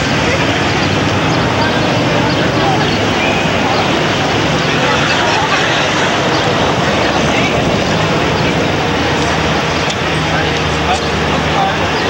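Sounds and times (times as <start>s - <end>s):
loud outdoor ambient noise: 0.0s - 12.0s.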